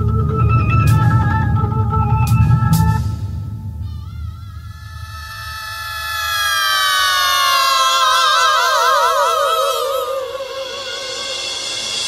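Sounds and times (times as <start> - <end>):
high tone sliding downward: 3.8 - 12.0.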